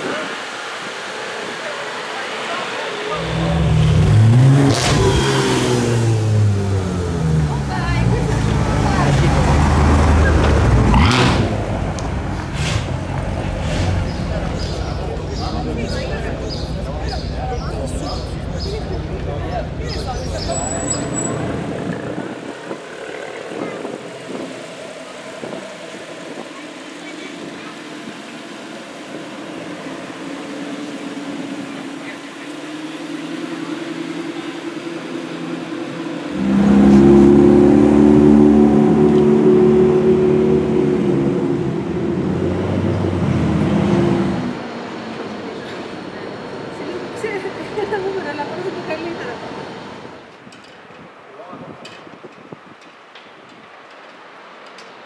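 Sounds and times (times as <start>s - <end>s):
voices: 0.0s - 50.3s
street noise: 0.0s - 55.0s.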